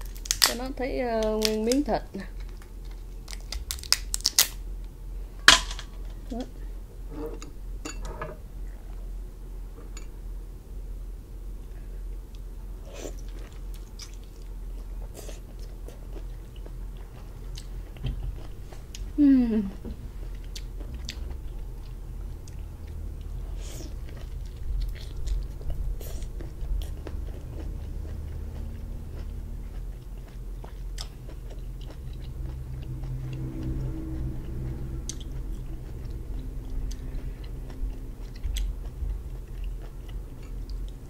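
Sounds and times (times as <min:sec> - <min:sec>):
steady low hum: 0:00.0 - 0:41.0
person chewing: 0:02.3 - 0:04.5, 0:12.8 - 0:41.0.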